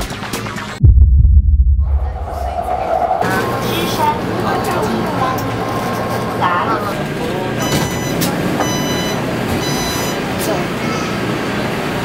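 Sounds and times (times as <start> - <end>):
train humming: 1.9 - 9.5
passengers moving: 3.3 - 11.6
electronic warning beeps: 7.6 - 10.2.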